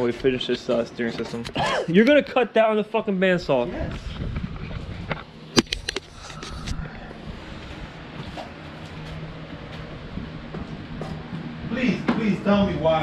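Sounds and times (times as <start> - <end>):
steady low hum: 2.6 - 13.0
camera handling rumble: 3.9 - 7.1.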